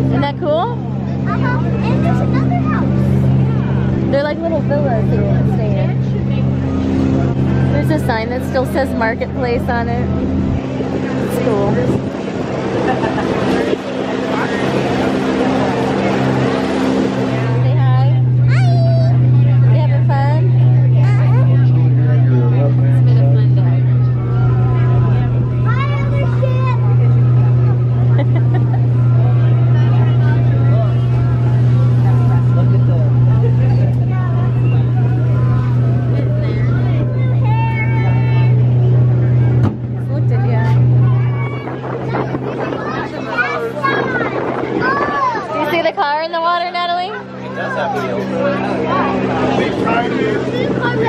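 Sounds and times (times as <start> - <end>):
boat engine droning: 0.0 - 51.0
indistinct voices: 0.0 - 51.0
water washing along hull: 0.0 - 51.0.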